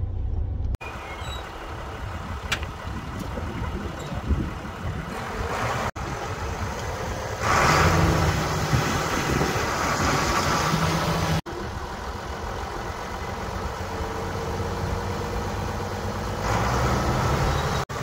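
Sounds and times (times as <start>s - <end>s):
tractor diesel engine idling: 0.0s - 16.4s.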